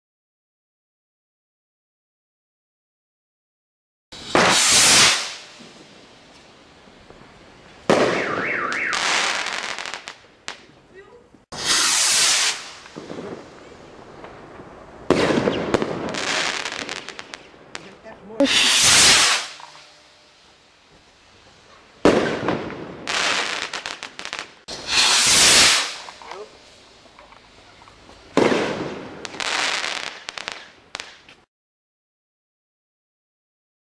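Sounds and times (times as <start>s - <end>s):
firework burst and crackling: 4.1s - 10.8s, 11.5s - 31.5s
firework rocket launching hiss: 4.2s - 10.6s, 11.5s - 31.3s.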